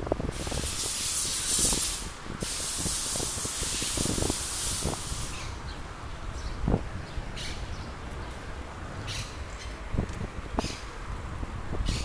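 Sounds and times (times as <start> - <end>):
loud high-pitched hiss: 0.3 - 5.6.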